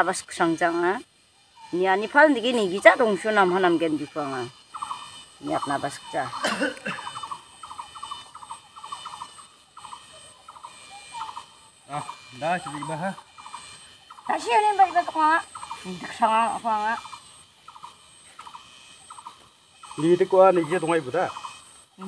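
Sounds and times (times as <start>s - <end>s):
insects chirping: 0.0s - 22.0s.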